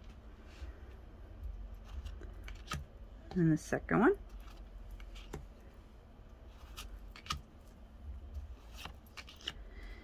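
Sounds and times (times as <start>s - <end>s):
faint steady hum: 0.0s - 10.0s
trading cards clicking and scraping: 1.4s - 2.9s, 4.2s - 5.6s, 6.4s - 10.0s.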